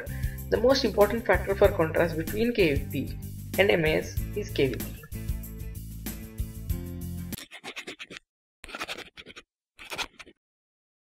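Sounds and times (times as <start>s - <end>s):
background music: 0.0s - 7.4s
marker scratching on paper: 7.3s - 10.4s.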